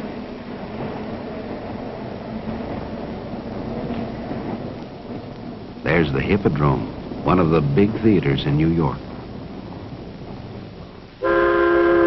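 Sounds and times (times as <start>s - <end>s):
steady rumbling noise: 0.0s - 12.0s.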